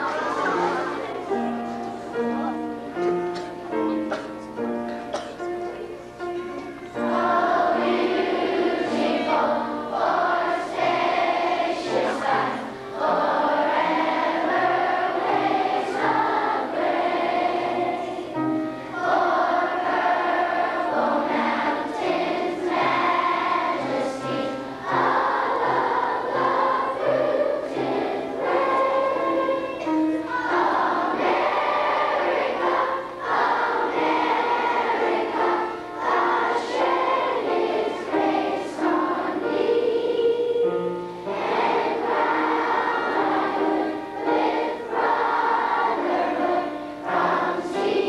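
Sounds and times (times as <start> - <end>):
children singing in unison: 0.0 - 1.6, 6.9 - 48.0
low instrumental accompaniment: 0.0 - 48.0.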